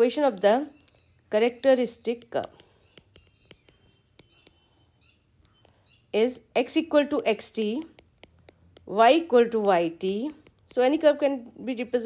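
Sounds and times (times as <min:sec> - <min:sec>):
stylus tapping on glass screen: 0:01.8 - 0:05.8, 0:06.9 - 0:11.1.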